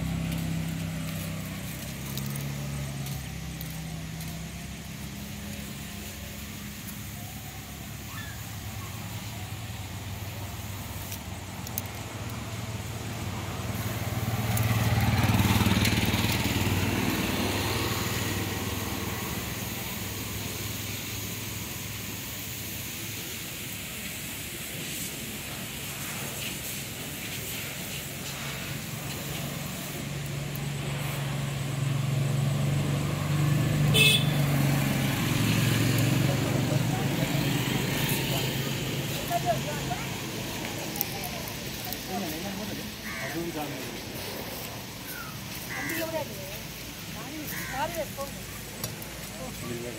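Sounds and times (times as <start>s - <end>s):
vehicles passing on road: 0.0s - 49.9s.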